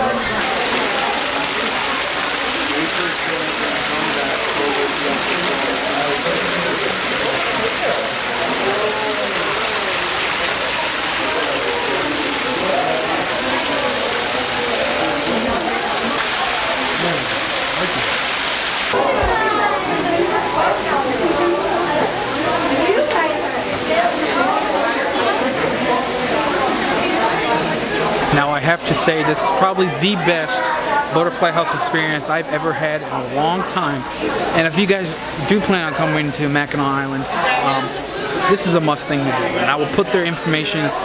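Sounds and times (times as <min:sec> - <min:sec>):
indistinct voices: 0:00.0 - 0:41.0
waterfall splashing: 0:00.1 - 0:41.0.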